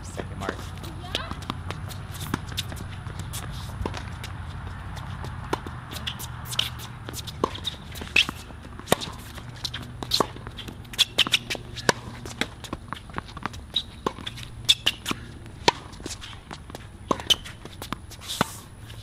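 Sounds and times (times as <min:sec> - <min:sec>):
shoes scuffing on court: 0:00.1 - 0:19.0
ball bouncing: 0:00.2 - 0:18.0
racket striking tennis ball: 0:00.5 - 0:18.6.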